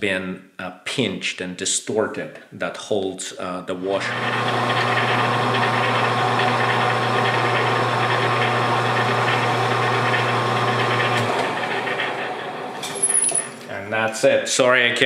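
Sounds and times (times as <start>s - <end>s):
cutting whine: 3.9s - 13.9s
metal lathe hum: 4.0s - 13.8s.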